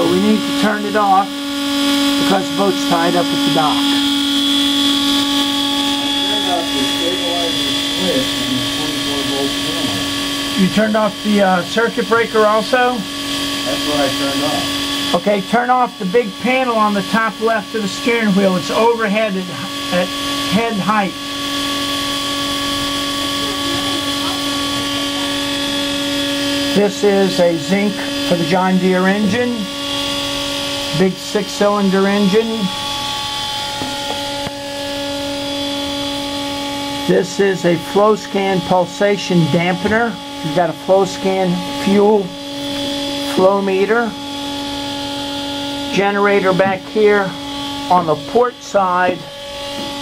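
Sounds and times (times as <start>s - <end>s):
engine-room machinery hum: 0.0s - 50.0s.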